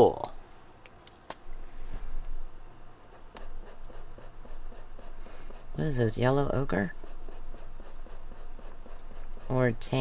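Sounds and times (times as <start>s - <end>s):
rustling and tapping of markers: 3.0s - 5.8s, 7.0s - 9.6s.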